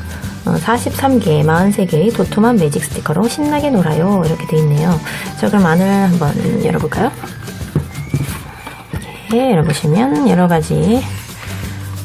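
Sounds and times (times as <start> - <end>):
cardboard book rustle: 7.1 - 9.0
board knocking on table: 7.2 - 8.5.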